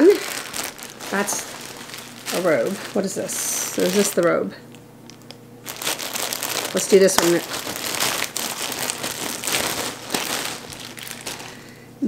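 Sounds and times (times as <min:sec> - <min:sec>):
plastic bag crinkling: 0:00.0 - 0:11.9.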